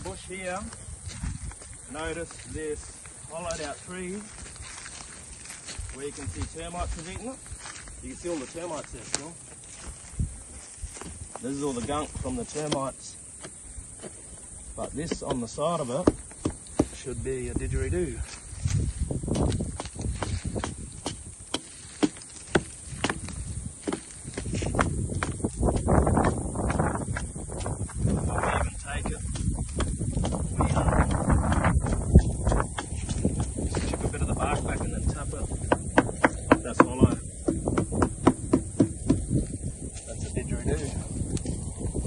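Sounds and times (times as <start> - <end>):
hatchet chopping tree trunk: 14.8 - 17.2, 19.2 - 39.6.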